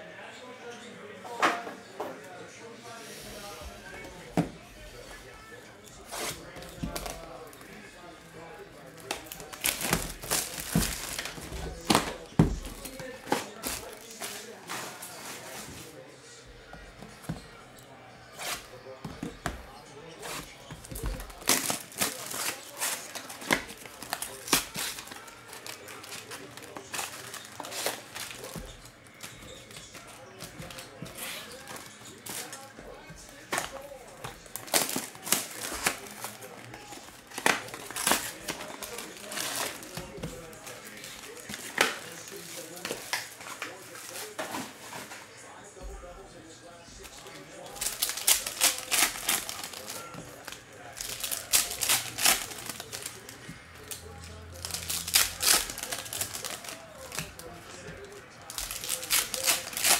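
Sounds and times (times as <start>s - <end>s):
cellophane wrap crinkling: 8.8s - 15.9s, 20.2s - 45.1s, 47.5s - 59.9s.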